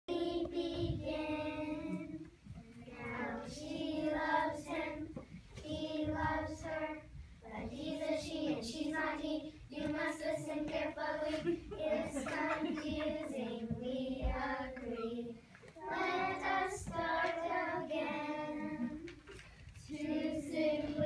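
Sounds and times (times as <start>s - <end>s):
children singing in unison: 3.0s - 19.1s, 19.9s - 21.0s.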